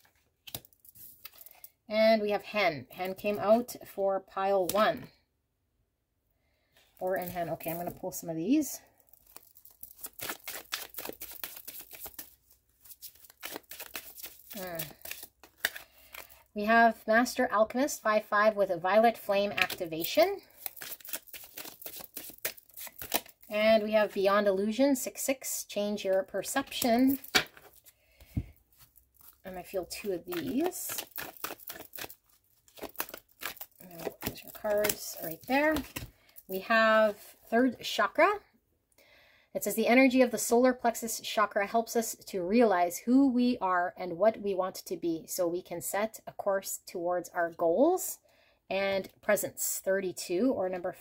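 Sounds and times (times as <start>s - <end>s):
cards being shuffled: 0.0s - 1.7s, 9.2s - 16.4s, 20.5s - 23.5s, 26.5s - 36.4s.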